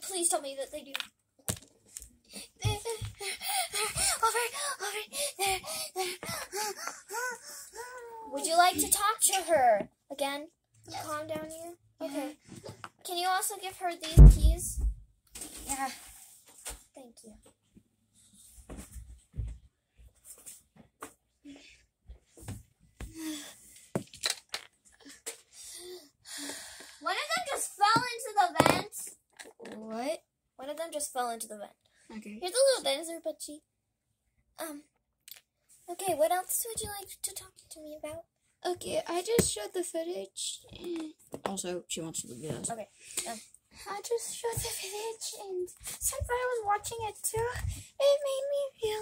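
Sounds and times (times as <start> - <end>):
child babbling wordless syllables: 7.7 - 9.0.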